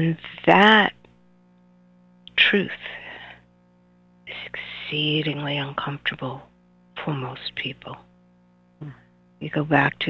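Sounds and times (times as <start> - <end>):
faint steady hum: 0.0 - 10.0
breathy voice speaking: 8.8 - 9.1.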